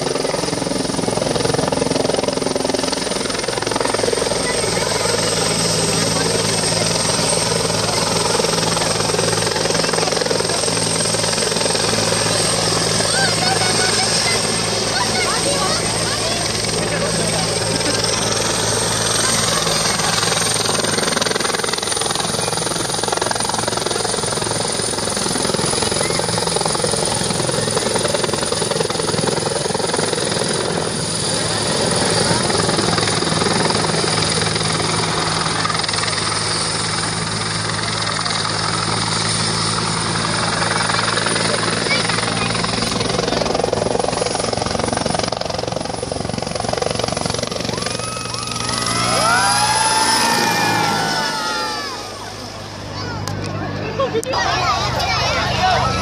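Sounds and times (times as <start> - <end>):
helicopter engine and rotor noise: 0.0 - 56.0
helicopter turbine whine: 0.0 - 56.0.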